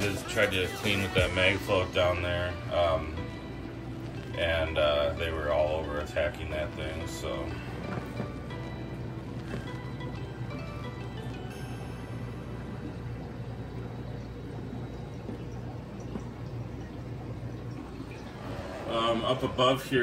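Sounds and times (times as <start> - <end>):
aquarium pumps humming: 0.0 - 20.0
faint music: 0.0 - 20.0
water moving: 0.0 - 20.0.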